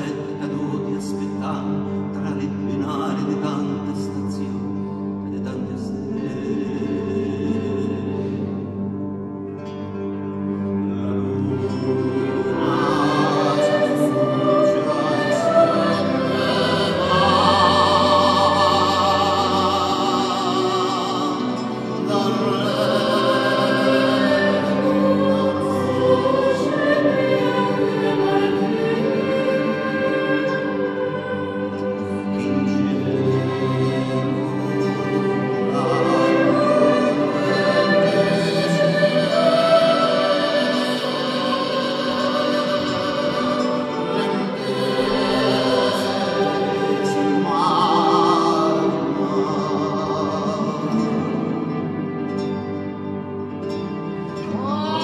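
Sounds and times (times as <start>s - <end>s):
choir singing: 0.0s - 55.0s
strings holding low notes: 0.0s - 55.0s.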